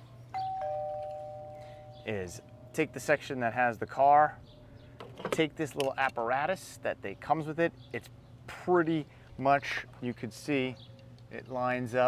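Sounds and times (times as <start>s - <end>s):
two-note ding-dong chime: 0.4s - 2.7s.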